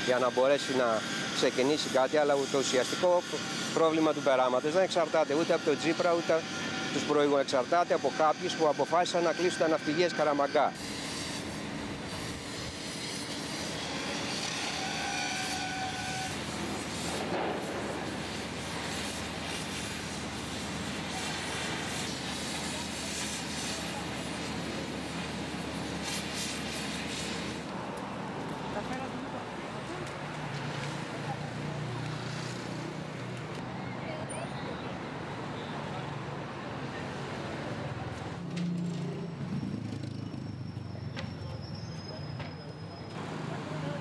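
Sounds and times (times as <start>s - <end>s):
industrial machinery noise: 0.0s - 33.7s
traffic noise: 0.0s - 44.0s
indistinct voices of passers-by: 12.8s - 44.0s.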